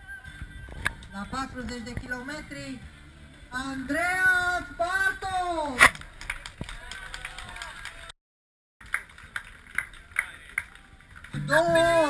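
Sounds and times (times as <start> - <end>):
hand claps: 5.8 - 8.1, 8.8 - 12.0
faint crowd chatter: 9.2 - 12.0.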